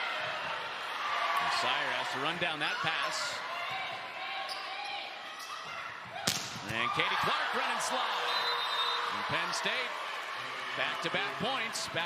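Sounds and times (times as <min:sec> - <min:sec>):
indoor arena crowd noise: 0:00.0 - 0:12.0
faint volleyball contacts: 0:02.2 - 0:12.0.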